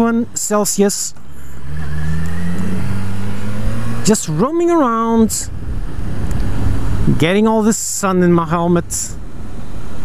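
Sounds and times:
motorcycle engine accelerating: 1.5 - 7.1.

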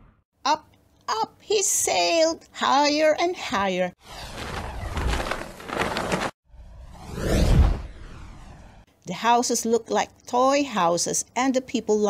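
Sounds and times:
whoosh sweep: 4.0 - 8.9.

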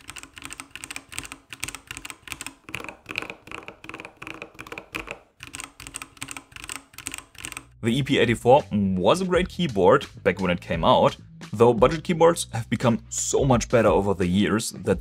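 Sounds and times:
mechanical keyboard typing: 0.0 - 7.8.

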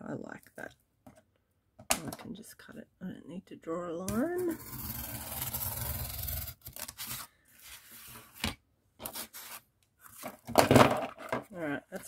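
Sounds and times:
craft knife slicing cardboard: 4.4 - 8.4, 9.0 - 9.6
cardboard handling: 6.3 - 12.0.

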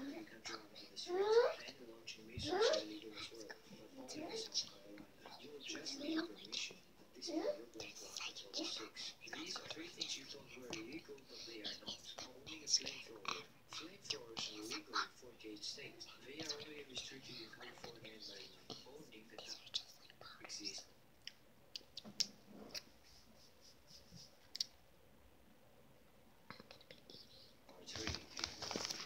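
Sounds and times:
girl whispering softly: 7.3 - 15.1, 16.0 - 20.9, 26.5 - 27.7
faint clicks and rustles: 26.5 - 29.0.

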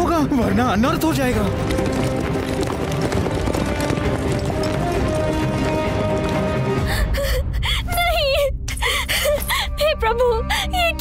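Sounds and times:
background music with held notes: 0.0 - 7.4
woman sobbing and whimpering: 6.8 - 11.0.

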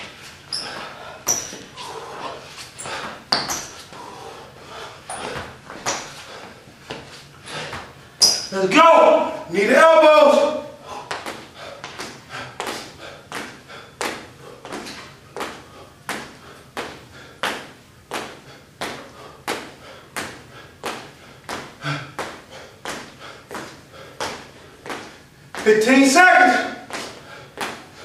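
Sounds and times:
feet thudding on hard floor: 5.1 - 8.0.

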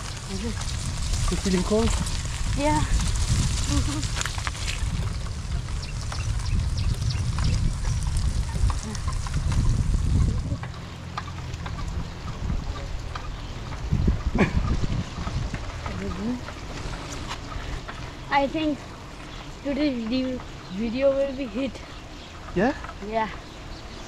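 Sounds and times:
tyres hissing on wet road: 0.0 - 4.7
wind rumbling on microphone: 0.0 - 24.0.

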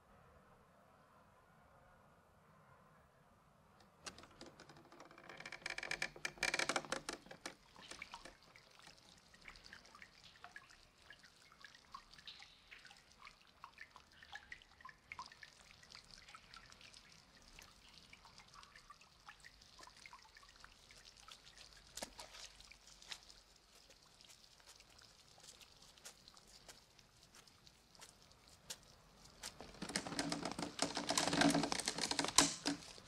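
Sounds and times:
wooden door creaking open: 3.9 - 7.6, 29.8 - 32.9
water dripping and trickling: 3.9 - 33.0.

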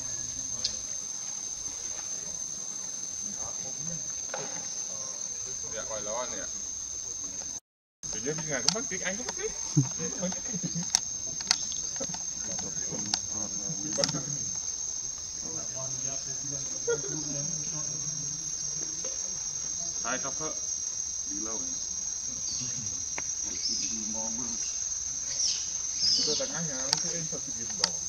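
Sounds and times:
insects singing: 0.0 - 28.0
clicks: 8.4 - 14.6, 26.9 - 28.0.

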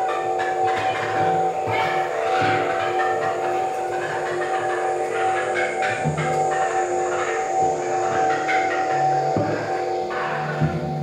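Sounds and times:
crackling noisy textures: 0.0 - 11.0
experimental electronic music: 0.0 - 11.0.

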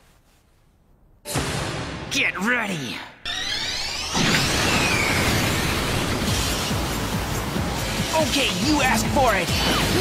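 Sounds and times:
dramatic music: 1.3 - 2.4, 3.2 - 10.0.

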